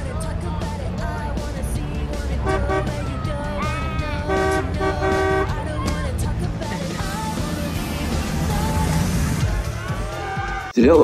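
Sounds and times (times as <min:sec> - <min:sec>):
background music: 0:00.0 - 0:11.0
car horn honking: 0:02.4 - 0:03.4, 0:04.0 - 0:06.0.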